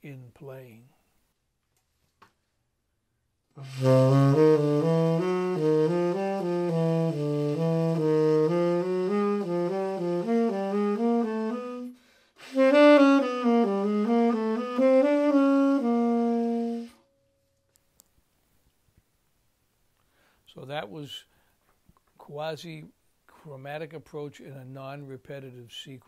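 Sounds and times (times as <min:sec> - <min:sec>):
tenor saxophone playing jazz: 0:03.6 - 0:17.1.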